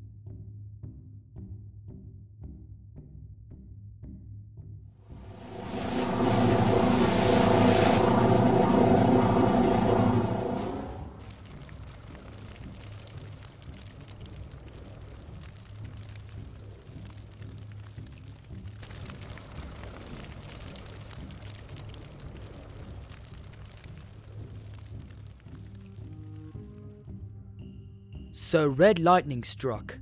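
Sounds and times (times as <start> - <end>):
low music drone: 5.1 - 16.9
soft crackling hiss: 11.2 - 26.8.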